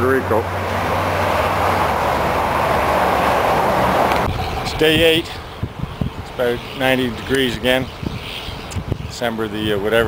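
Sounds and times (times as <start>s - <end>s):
car driving past: 0.2s - 4.8s.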